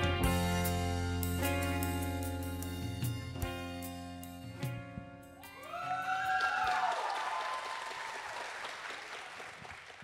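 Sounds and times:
audience applauding: 5.5s - 10.0s.

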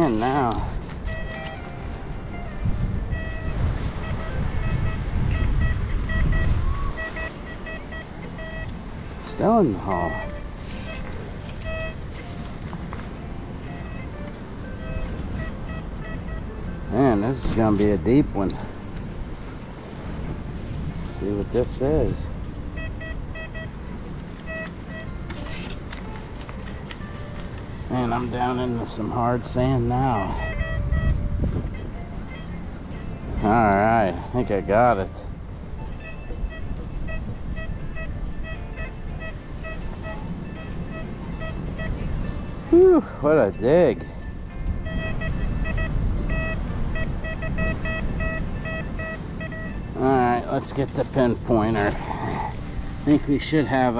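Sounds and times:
metal detector beeps: 0.0s - 18.3s, 21.1s - 26.2s, 27.9s - 35.2s, 35.8s - 52.0s
steady low rumble: 44.2s - 53.9s.

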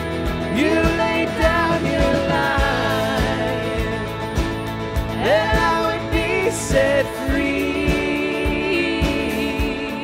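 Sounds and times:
acoustic guitar: 0.0s - 10.0s
worship band playing slow song: 0.0s - 10.0s.

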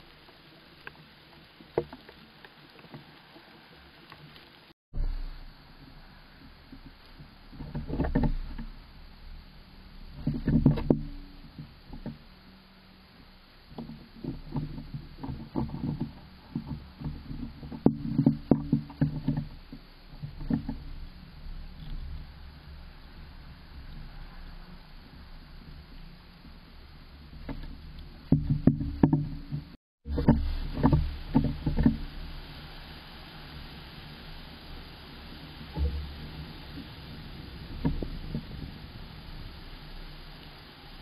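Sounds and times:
faint steady hiss: 0.0s - 41.0s.

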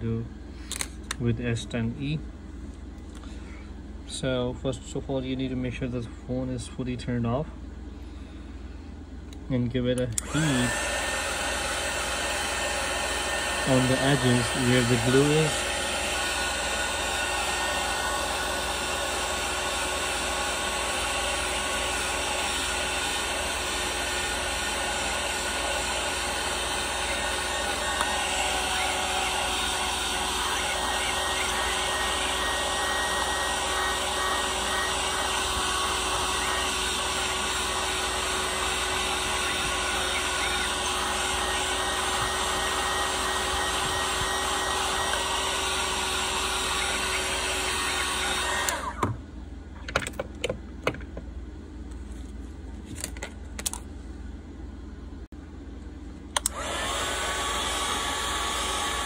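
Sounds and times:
heat gun fan blowing: 0.0s - 49.3s, 56.2s - 59.0s.

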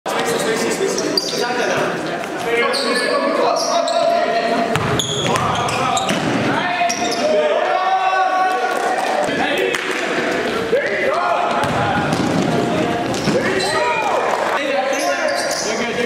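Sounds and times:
sneakers squeaking: 0.2s - 7.4s, 11.4s - 16.0s
players calling out: 2.4s - 16.0s
ball bouncing on hardwood floor: 11.5s - 13.5s.

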